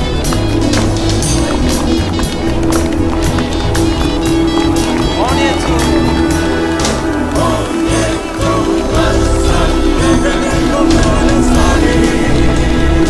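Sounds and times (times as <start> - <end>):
music with steady beat: 0.0 - 13.0.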